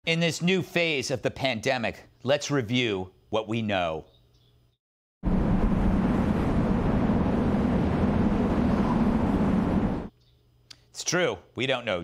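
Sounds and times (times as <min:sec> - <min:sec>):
steady rushing outdoor noise: 0:05.2 - 0:10.1.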